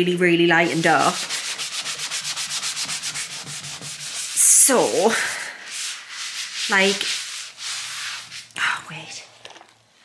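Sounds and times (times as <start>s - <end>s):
sponge scrubbing wet wood: 0.5s - 8.5s.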